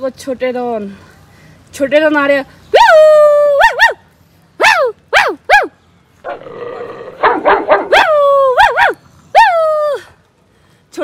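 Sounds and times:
small dog barking: 4.6 - 5.7, 7.2 - 9.5
dog growling: 6.3 - 8.0.

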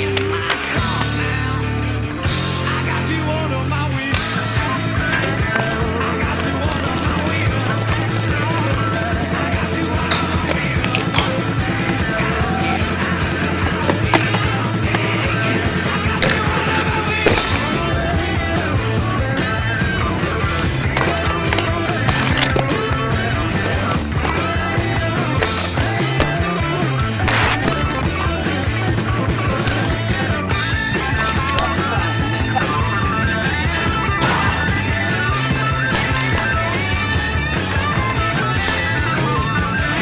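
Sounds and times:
rock song: 0.0 - 40.0
skate wheels rolling on concrete: 0.0 - 40.0.

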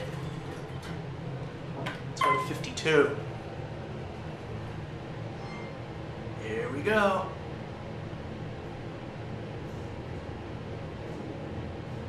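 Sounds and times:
elevator cab hum: 0.0 - 12.0.

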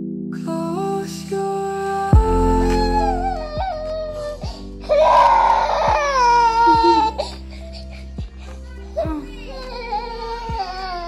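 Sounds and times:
background music with steady beat: 1.2 - 11.0
toddler crying: 2.7 - 11.0.

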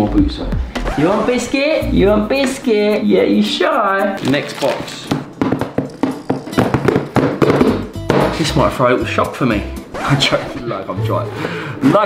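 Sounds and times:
music with percussive beat: 0.1 - 10.4.

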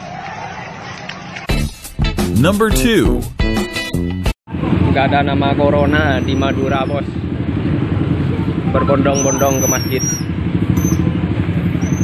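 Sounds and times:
motorcycle engines rumbling: 4.5 - 12.0.

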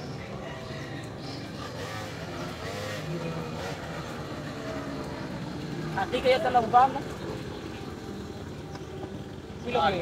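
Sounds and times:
faint voices: 0.0 - 10.0
motor scooter running: 0.0 - 10.0.

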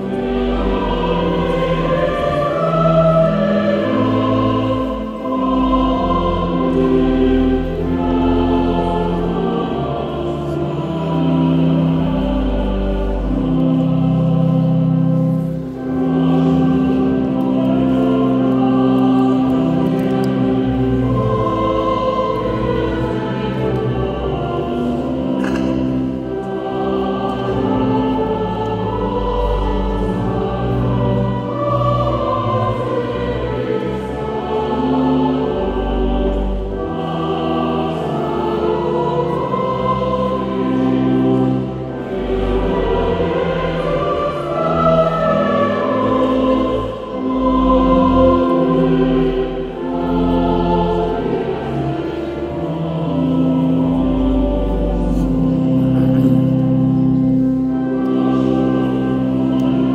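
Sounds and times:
choir singing a hymn: 0.0 - 59.9
pipe organ chords: 0.0 - 59.9.

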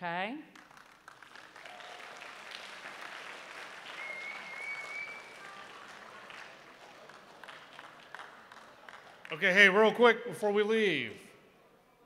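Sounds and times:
audience applauding: 0.6 - 9.8.

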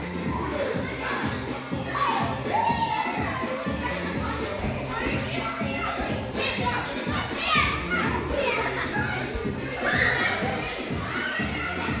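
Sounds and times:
music: 0.0 - 12.0
girls shouting and singing: 0.1 - 12.0.

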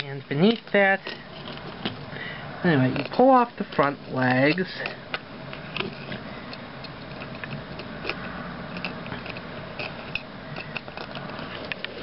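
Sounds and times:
plastic toy parts clicking: 4.5 - 12.0.

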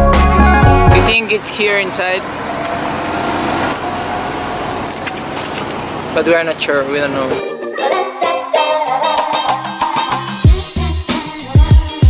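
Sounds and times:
street traffic hum: 0.4 - 7.4.

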